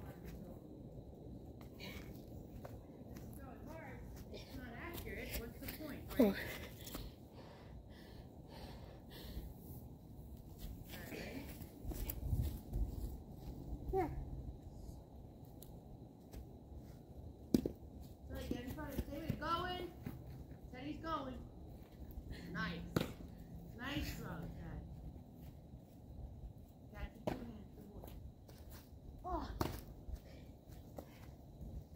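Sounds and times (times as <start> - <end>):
baseball smacking into a mitt: 23.0 - 23.2.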